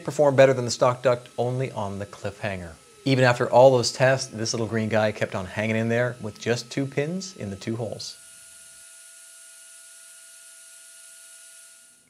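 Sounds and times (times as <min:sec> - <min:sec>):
fan airy hiss: 0:00.0 - 0:08.2
faint steady whine: 0:00.0 - 0:12.0.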